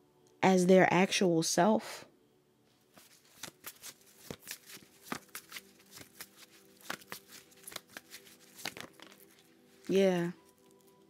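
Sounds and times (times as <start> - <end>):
cards being shuffled: 3.0 - 10.9.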